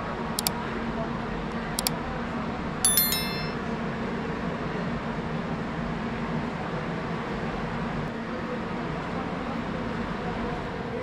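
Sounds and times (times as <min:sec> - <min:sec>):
bright metallic clink: 0:02.9 - 0:03.6.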